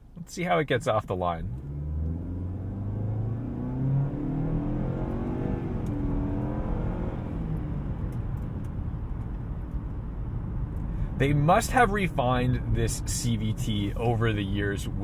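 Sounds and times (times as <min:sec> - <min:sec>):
road noise: 0:01.0 - 0:15.0
car engine accelerating: 0:01.3 - 0:15.0.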